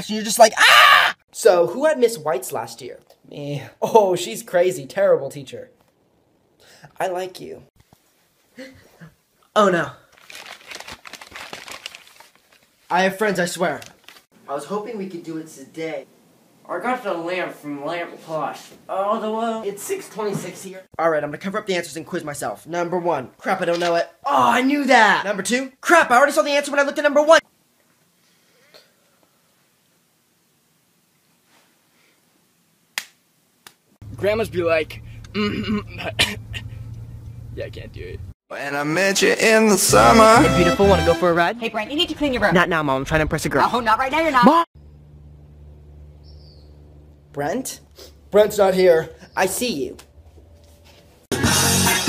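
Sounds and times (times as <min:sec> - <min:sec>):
paper bag crinkling: 0:10.0 - 0:14.3.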